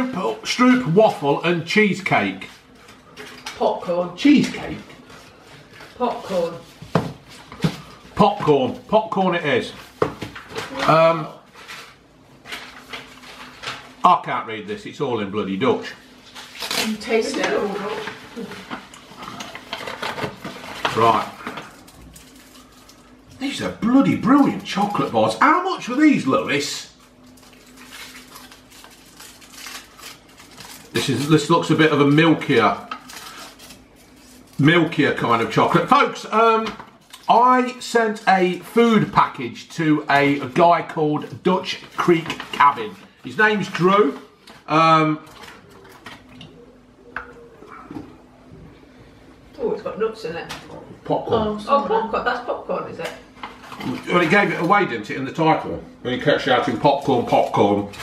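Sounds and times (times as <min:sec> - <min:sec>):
snack wrapper crinkling: 0:19.3 - 0:23.2, 0:26.9 - 0:35.6.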